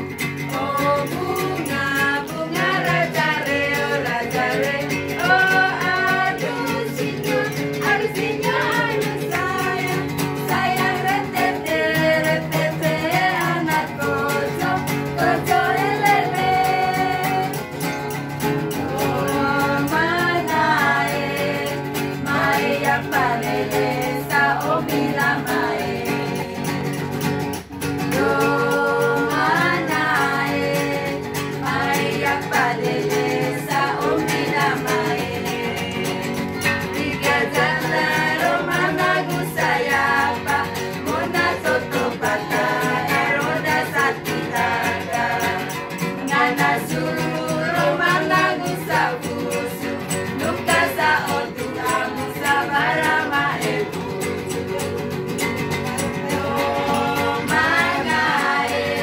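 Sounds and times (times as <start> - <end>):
group singing in unison: 0.0 - 59.0
strummed acoustic guitar: 0.0 - 59.0.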